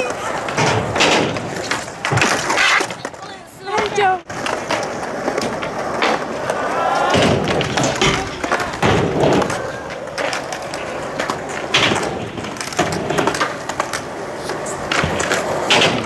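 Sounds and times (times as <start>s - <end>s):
skateboard knocks and clacks: 0.0s - 16.0s
skateboard wheels rolling on concrete: 0.0s - 16.0s.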